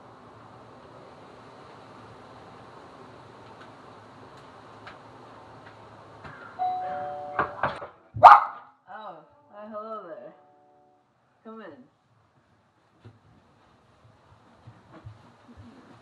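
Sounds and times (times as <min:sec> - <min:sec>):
two-tone doorbell chime: 0:06.6 - 0:07.6.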